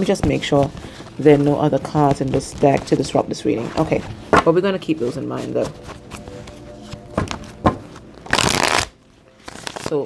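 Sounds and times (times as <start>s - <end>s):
cards riffling: 6.0s - 10.0s.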